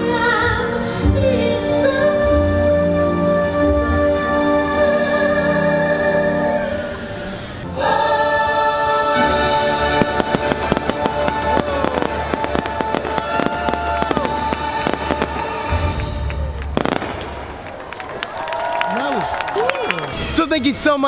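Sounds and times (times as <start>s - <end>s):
orchestral music: 0.0s - 18.0s
fireworks popping and crackling: 10.0s - 18.2s.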